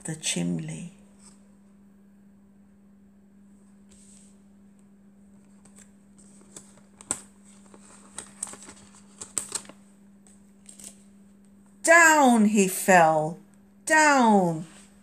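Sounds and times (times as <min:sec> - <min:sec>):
woman reading aloud: 0:00.0 - 0:01.0, 0:11.8 - 0:14.8
low steady hum: 0:00.0 - 0:15.0
laminated cards crackling and clicking: 0:05.4 - 0:11.1.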